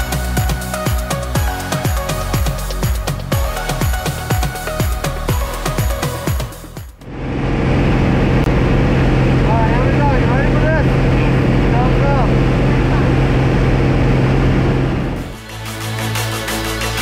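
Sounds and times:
electronic music: 0.0 - 7.3, 15.2 - 17.0
wind rushing: 7.0 - 9.5
plane engine and propeller drone: 7.0 - 15.5.

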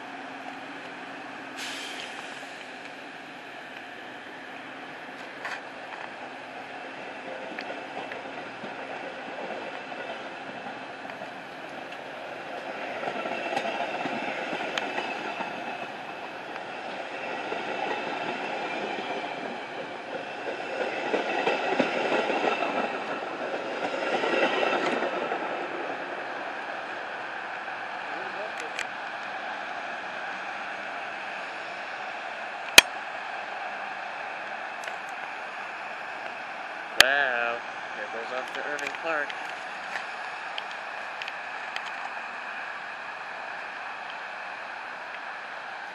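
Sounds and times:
train wheels rumbling on rails: 0.0 - 45.9.

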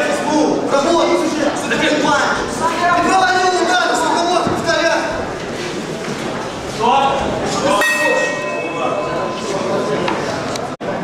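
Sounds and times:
ring bell ringing: 7.7 - 10.8.

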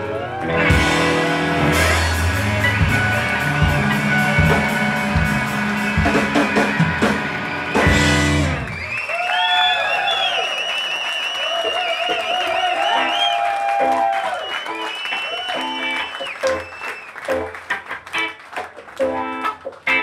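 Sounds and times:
blues rock band playing: 0.0 - 9.0, 12.1 - 20.0
electric guitar bent notes: 0.4 - 8.8.

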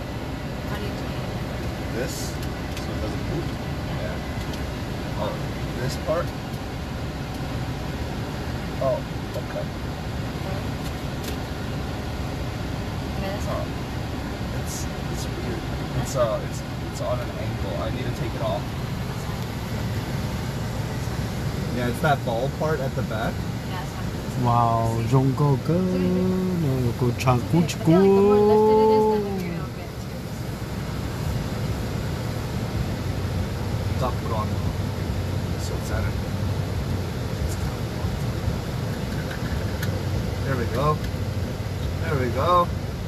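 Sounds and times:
air conditioning hiss: 0.0 - 43.0
car engine low rumble: 0.0 - 43.0.

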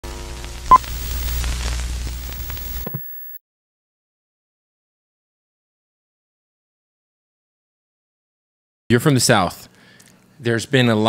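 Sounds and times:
low electronic hum: 0.0 - 3.0
static hiss: 0.0 - 3.0.

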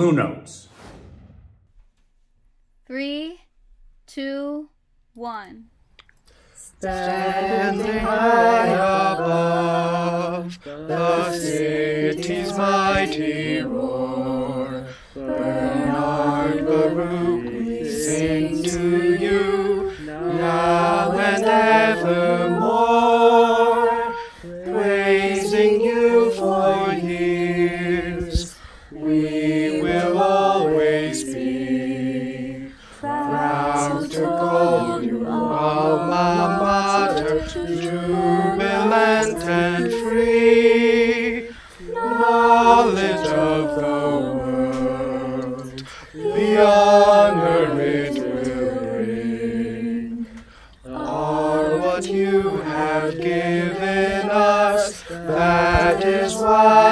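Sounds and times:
a cappella group singing harmony: 6.3 - 56.9.

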